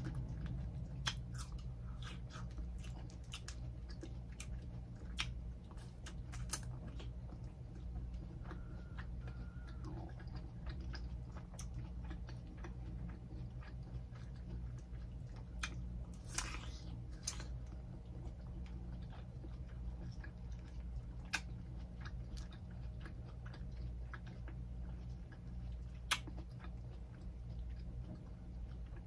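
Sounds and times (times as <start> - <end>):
person chewing and biting melon: 0.0 - 29.0
steady low hum: 0.0 - 29.0.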